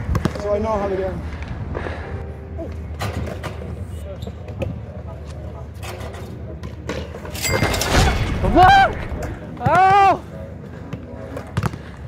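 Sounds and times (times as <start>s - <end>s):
rising and falling whoop: 8.4s - 10.2s.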